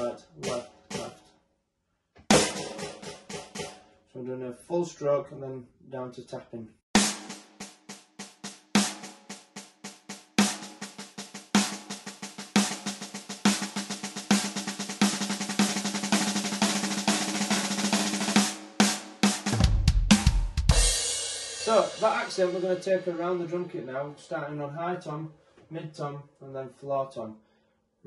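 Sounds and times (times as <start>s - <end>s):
sticks on electronic snare pad: 0.0s - 1.2s, 2.3s - 3.8s, 7.0s - 20.3s, 21.6s - 24.1s.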